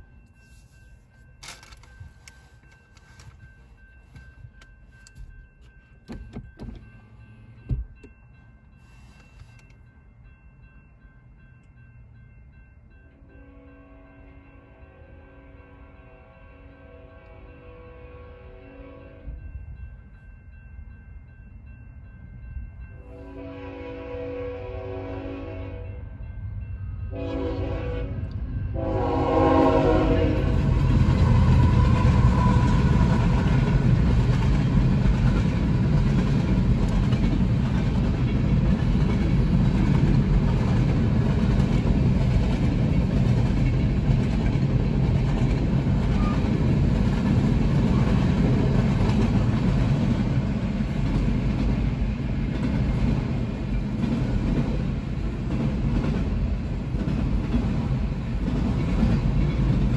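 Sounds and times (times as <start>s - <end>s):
train horn blasts: 13.2s - 19.5s, 23.1s - 26.1s, 27.1s - 33.8s.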